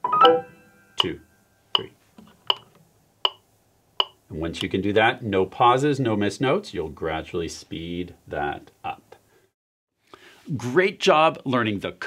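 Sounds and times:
electronic metronome beeps: 0.0s - 1.1s.

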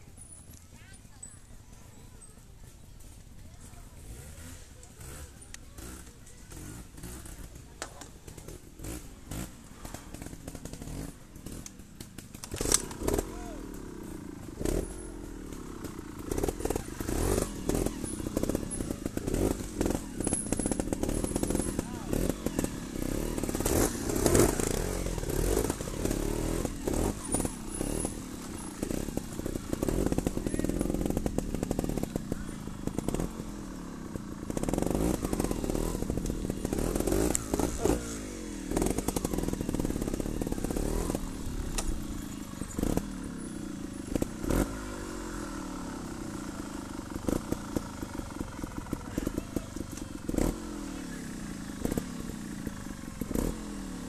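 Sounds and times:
motorcycle engine throttle blips: 0.0s - 54.0s.

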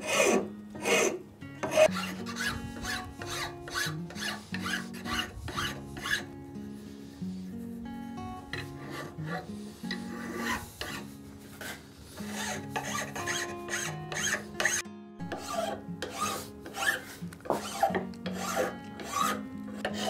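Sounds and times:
hand file rasping on wood: 0.0s - 6.3s, 8.5s - 20.0s.

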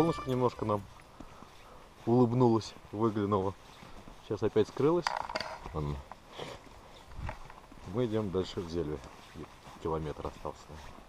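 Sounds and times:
camera handling rustle: 5.0s - 7.6s.

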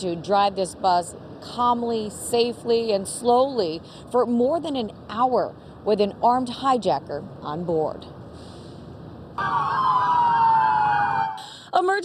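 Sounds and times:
police sirens wailing: 9.4s - 11.5s.

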